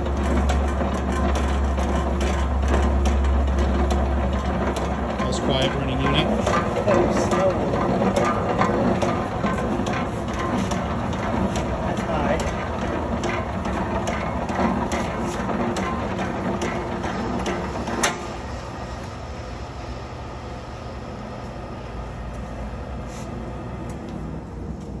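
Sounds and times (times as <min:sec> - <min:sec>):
slicer carriage knocking: 0:00.0 - 0:18.3
motor hum: 0:00.0 - 0:25.0.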